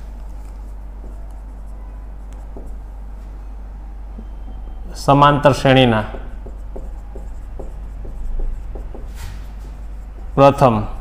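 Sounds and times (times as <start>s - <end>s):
marker writing on whiteboard: 0.0s - 3.1s, 4.2s - 11.0s
steady low hum: 0.0s - 11.0s.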